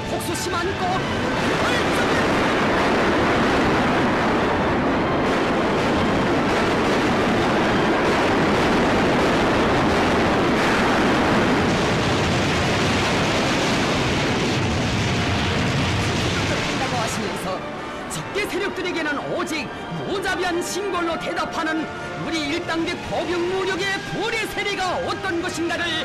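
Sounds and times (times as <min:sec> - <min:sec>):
artillery barrage roar: 0:01.0 - 0:17.2.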